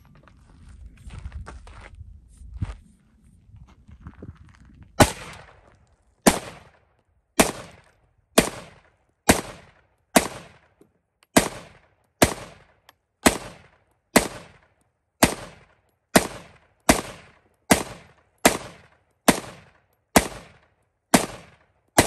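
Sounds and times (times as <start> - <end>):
rifle shots with echo: 5.0 - 22.0.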